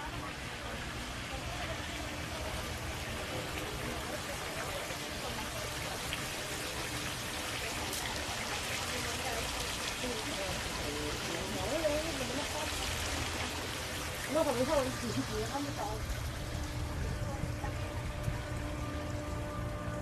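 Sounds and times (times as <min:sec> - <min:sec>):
people talking: 0:00.0 - 0:19.0
fountain water splashing: 0:00.0 - 0:20.0.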